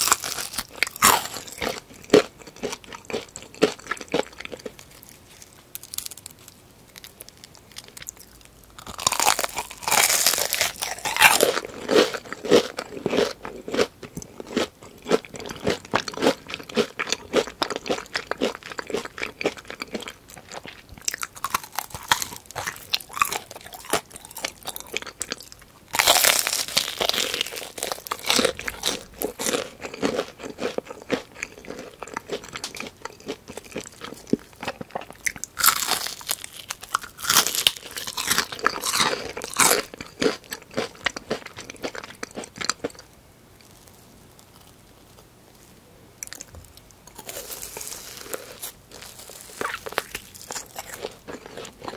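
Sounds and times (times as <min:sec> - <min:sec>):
crunchy biting of fried chicken: 0:00.0 - 0:45.2, 0:46.2 - 0:51.9
crackly chewing: 0:00.0 - 0:51.9.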